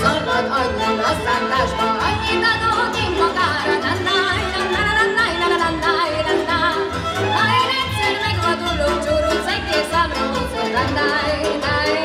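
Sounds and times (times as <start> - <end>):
folk string band: 0.0 - 12.0
woman singing folk song: 0.0 - 12.0.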